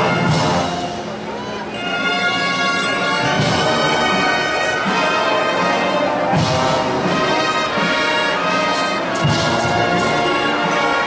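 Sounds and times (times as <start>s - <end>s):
brass band funeral march: 0.0s - 11.0s.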